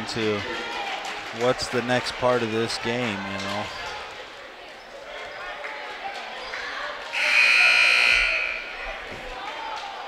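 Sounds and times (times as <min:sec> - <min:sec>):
crowd chatter: 0:00.0 - 0:10.0
scoreboard horn buzz: 0:07.2 - 0:08.8.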